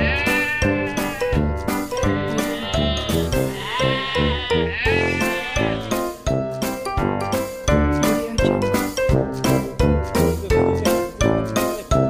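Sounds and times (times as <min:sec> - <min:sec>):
goat bleating: 0:00.0 - 0:06.0
music with steady beat: 0:05.4 - 0:12.0.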